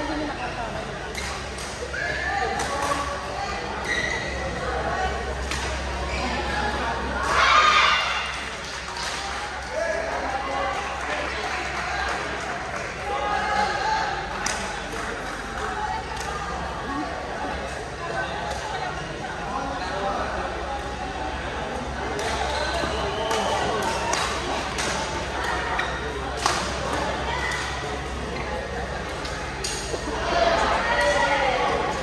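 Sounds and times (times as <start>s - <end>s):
crowd chatter in hall: 0.0s - 32.0s.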